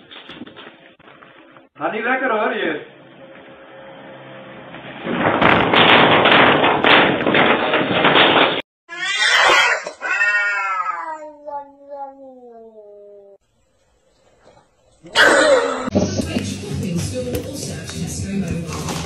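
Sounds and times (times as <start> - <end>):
loud clattering: 4.8 - 8.6
cat caterwauling: 8.9 - 13.4
cats yowling: 8.9 - 13.4.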